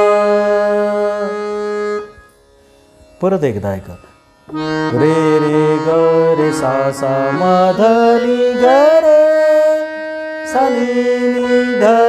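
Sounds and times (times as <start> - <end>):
harmonium sustaining a note: 0.0 - 12.0.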